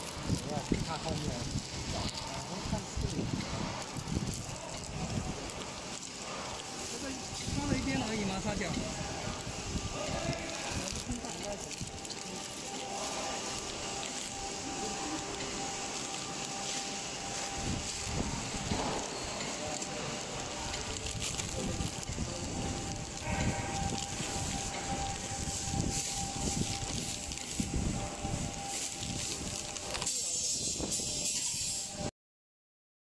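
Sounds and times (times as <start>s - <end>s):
packing machine humming: 0.0s - 32.0s
plastic wrapping crinkling: 0.0s - 32.1s.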